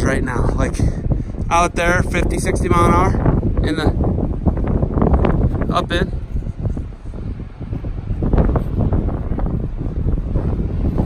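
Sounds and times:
wind gusting across microphone: 0.0 - 11.0.

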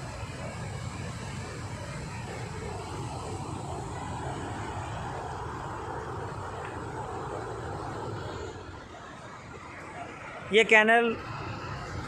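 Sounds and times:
flowing water rushing: 0.0 - 12.0.

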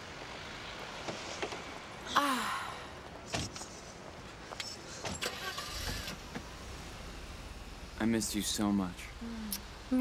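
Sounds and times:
car engine starting and running: 5.2 - 10.0.

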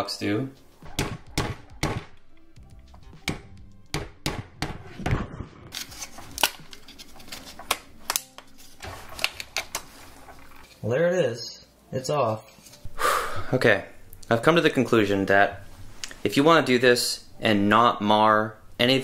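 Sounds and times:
light background music: 0.0 - 19.0.

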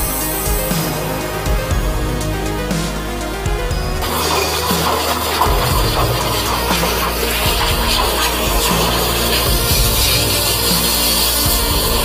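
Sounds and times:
background music: 0.0 - 12.0
water rushing from jetter hose: 4.0 - 12.0.

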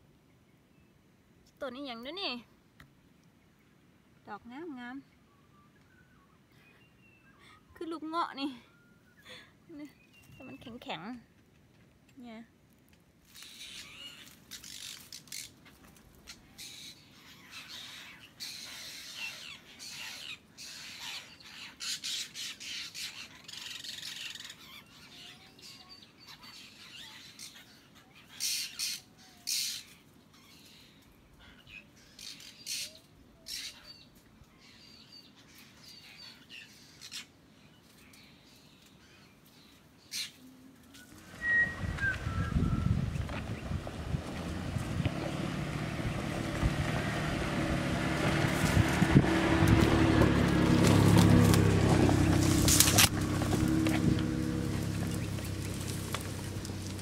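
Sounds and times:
birds squawking: 13.3 - 34.0, 41.1 - 57.0.

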